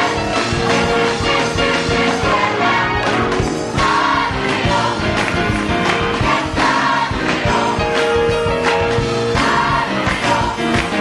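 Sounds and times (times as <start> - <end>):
gospel choir singing: 0.0 - 11.0
instrumental accompaniment with beat: 0.0 - 11.0.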